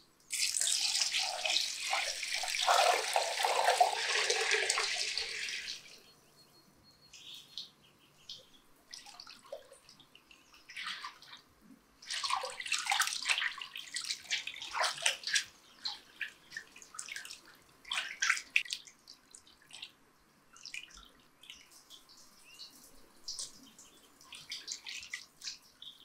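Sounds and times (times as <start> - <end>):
water dripping: 0.2 - 6.0, 12.0 - 22.6
water sloshing in a metal pot: 0.3 - 5.9, 9.0 - 11.4, 12.0 - 18.7.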